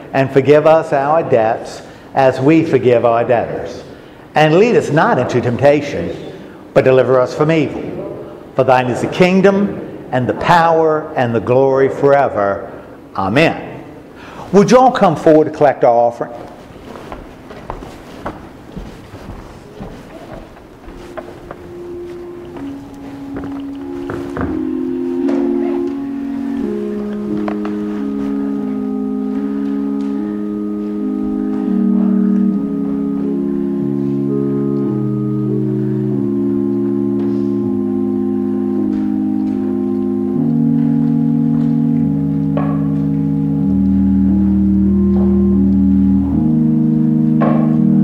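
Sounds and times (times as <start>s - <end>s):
church organ chords: 0.0s - 48.0s
knocks and rustles of people: 16.5s - 28.4s.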